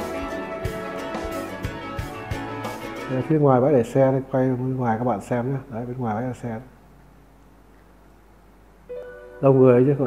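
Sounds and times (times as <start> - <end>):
background music held notes: 0.0 - 4.3, 8.9 - 10.0
faint background noise: 0.0 - 10.0.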